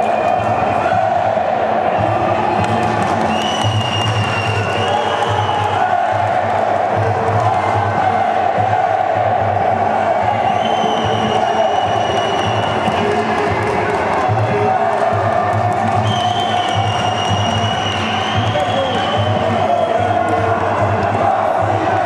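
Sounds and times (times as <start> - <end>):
crowd shouting and cheering: 0.0 - 22.0
music with low beat: 0.0 - 22.0.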